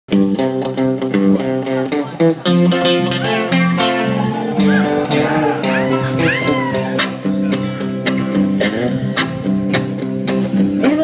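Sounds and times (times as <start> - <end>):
electric guitar: 0.1 - 11.0
acoustic guitar strumming: 0.2 - 11.0.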